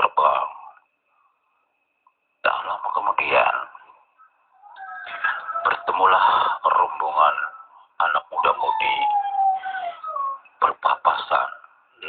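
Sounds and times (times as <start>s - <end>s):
man talking: 0.0s - 0.7s, 2.4s - 3.8s, 5.6s - 9.3s, 10.6s - 11.7s
faint falling wail: 4.6s - 6.5s
long falling howl: 4.6s - 6.5s.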